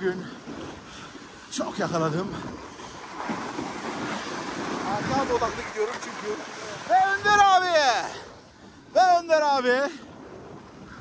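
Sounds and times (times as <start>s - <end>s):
snowboards sliding over snow: 0.0s - 8.1s, 9.0s - 11.0s
wind on microphone: 2.2s - 5.9s.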